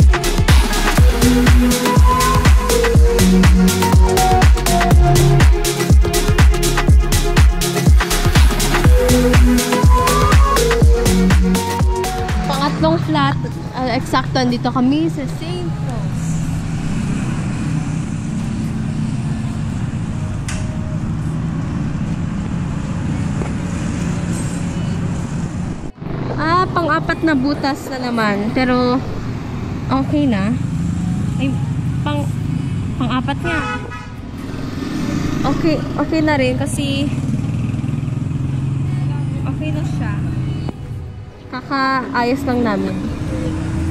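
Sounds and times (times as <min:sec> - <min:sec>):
low engine drone: 0:00.0 - 0:27.3
roadside traffic: 0:00.0 - 0:43.9.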